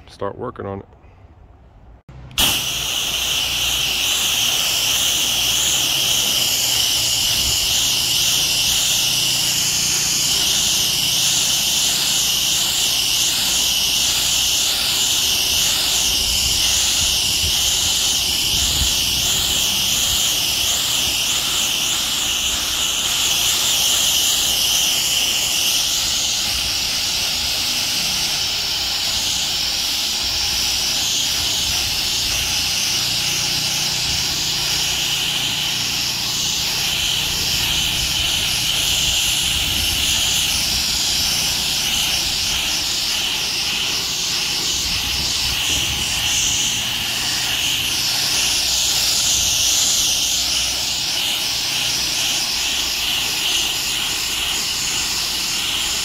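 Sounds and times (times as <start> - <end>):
pressure washer spray hissing: 2.2 - 56.0.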